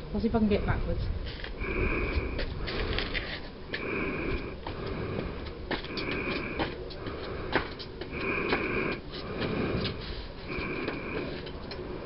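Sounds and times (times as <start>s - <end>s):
heavy breathing: 1.2s - 12.0s.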